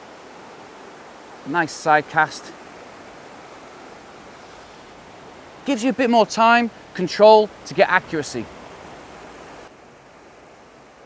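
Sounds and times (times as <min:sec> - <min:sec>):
shallow river rushing over stones: 0:00.0 - 0:11.0.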